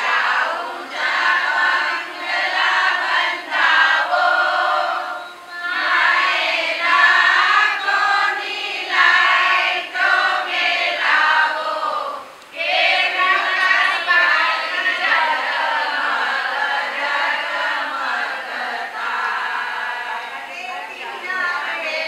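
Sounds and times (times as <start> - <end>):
women singing in unison: 0.0 - 22.0.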